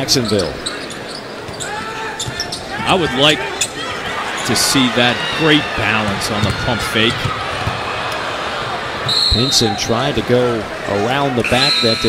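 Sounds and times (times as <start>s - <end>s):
arena crowd murmur: 0.0s - 12.0s
basketball dribbling on hardwood: 6.1s - 7.8s.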